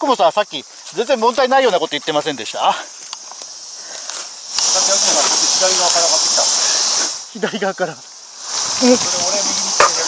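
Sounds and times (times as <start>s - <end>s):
cicada chorus: 0.0s - 10.0s.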